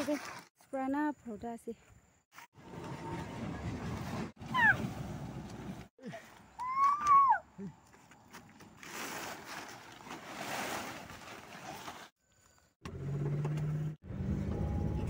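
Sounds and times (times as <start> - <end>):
plastic tarp rustling: 8.7 - 12.1.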